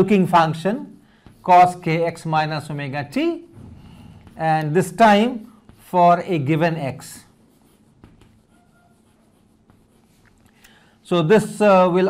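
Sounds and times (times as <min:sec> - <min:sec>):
chalk scratching on blackboard: 0:00.0 - 0:03.4, 0:04.1 - 0:12.0
chalk tapping: 0:00.0 - 0:03.4, 0:04.0 - 0:11.6.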